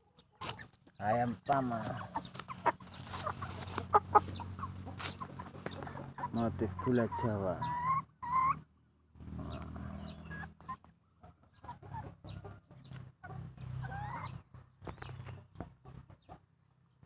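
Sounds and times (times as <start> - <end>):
chicken clucking and chirping: 0.0 - 17.0.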